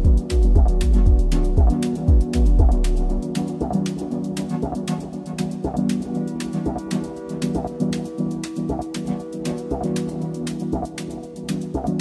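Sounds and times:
four-on-the-floor beat: 0.0 - 5.0
crisp hi-hat ticks: 0.0 - 12.0.

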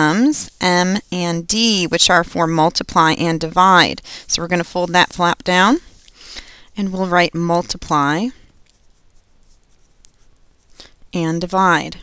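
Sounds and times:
pen scratching on paper: 6.8 - 10.8.

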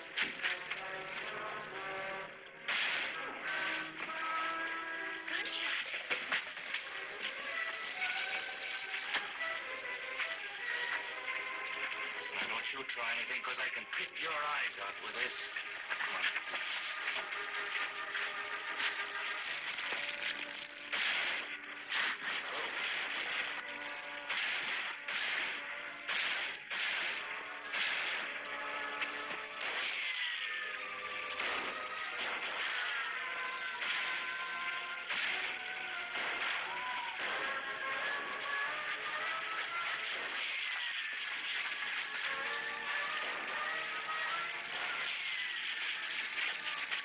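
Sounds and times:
background music: 0.0 - 47.0
fire burning: 0.0 - 47.0
whip cracking: 0.1 - 1.4, 2.7 - 4.6, 15.9 - 28.4, 29.0 - 30.6, 31.3 - 47.0.

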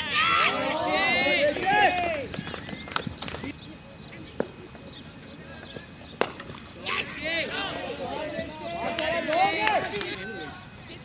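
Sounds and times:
people shouting: 0.0 - 2.6, 6.8 - 10.7.

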